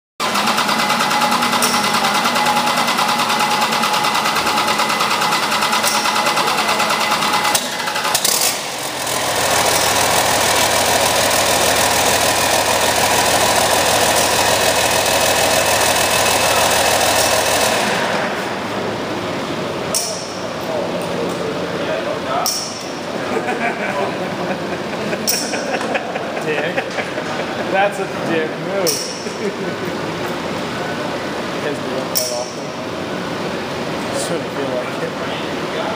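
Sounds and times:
large diesel engine running: 0.2s - 23.4s.

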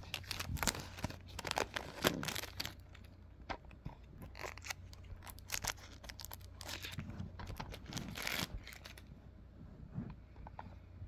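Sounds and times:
plastic wrapping crinkling and tearing: 0.0s - 3.1s, 4.1s - 9.1s.

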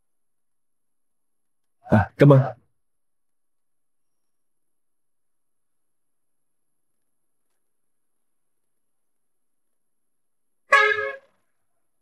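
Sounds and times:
vehicle horn honk: 10.7s - 11.4s.

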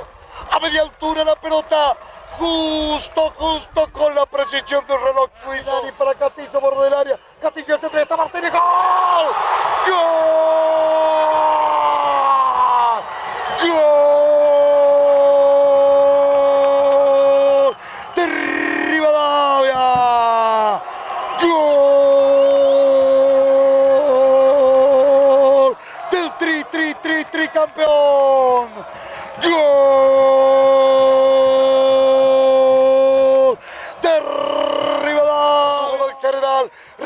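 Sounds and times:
man shouting goal cry: 7.7s - 36.7s.

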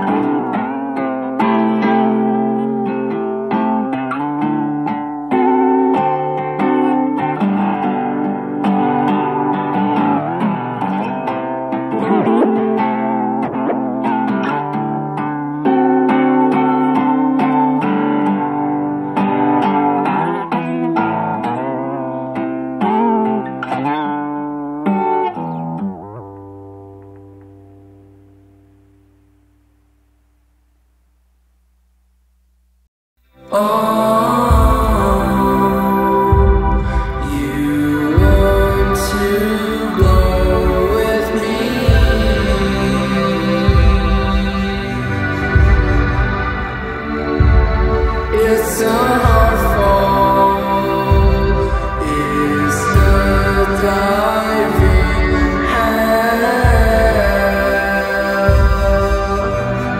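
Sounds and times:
instrumental indie rock: 0.0s - 29.7s, 33.2s - 59.9s.

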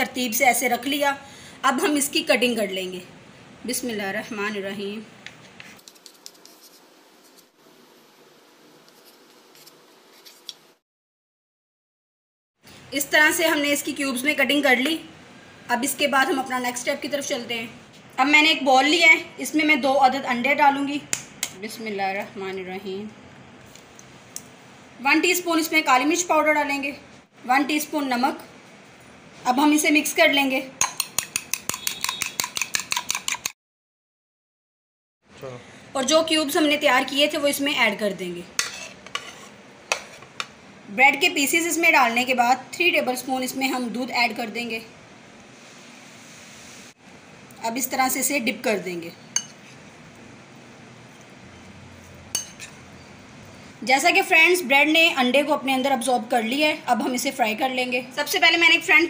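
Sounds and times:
whisk clinking against glass bowl: 30.8s - 33.5s.

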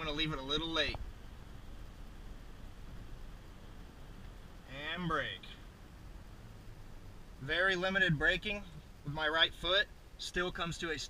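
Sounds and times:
man speaking: 0.0s - 1.0s, 4.7s - 5.6s, 7.4s - 11.0s
road and drivetrain rumble: 0.0s - 11.0s.

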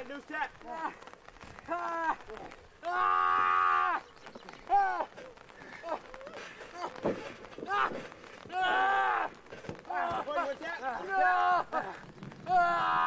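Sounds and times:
person shouting and yelling: 8.5s - 13.0s.

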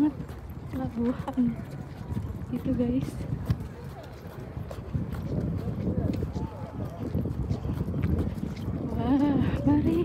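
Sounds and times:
faint voices of passers-by: 0.0s - 10.0s
footsteps on pavement: 0.0s - 10.0s.

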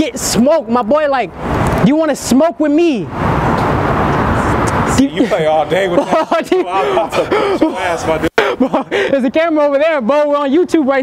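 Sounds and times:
loud steady rushing noise: 0.0s - 9.2s.

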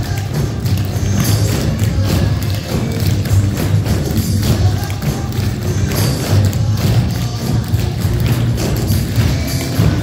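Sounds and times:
music playing: 0.0s - 10.0s
tap shoes on wooden floor: 0.0s - 10.0s.

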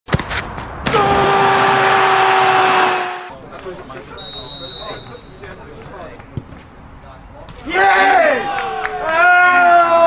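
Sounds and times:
faint open-air ambience: 0.1s - 10.0s
referee's whistle blast: 4.2s - 5.4s.

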